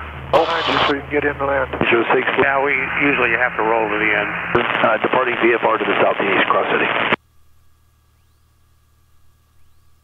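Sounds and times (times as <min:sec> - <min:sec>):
faint electrical hum and hiss: 0:00.1 - 0:10.0
aviation radio transmission: 0:00.3 - 0:07.2.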